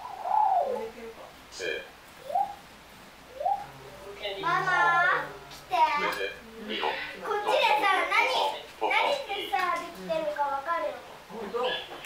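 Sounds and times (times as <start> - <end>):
robot gliding coo-like calls: 0.0 - 1.0, 2.2 - 2.6, 3.3 - 3.8.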